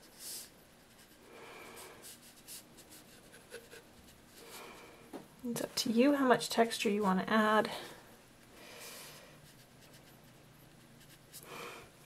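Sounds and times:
paintbrush strokes on paper: 0.0s - 4.8s, 8.8s - 11.6s.

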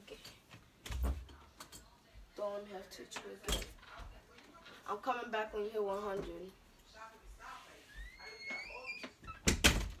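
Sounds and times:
door creaking: 7.9s - 10.0s
door banging shut: 9.4s - 10.0s.

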